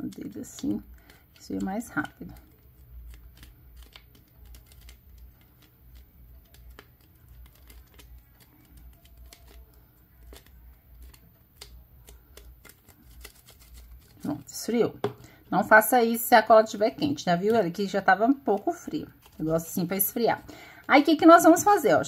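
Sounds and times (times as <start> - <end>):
plastic bottle crackling: 0.6 - 14.5.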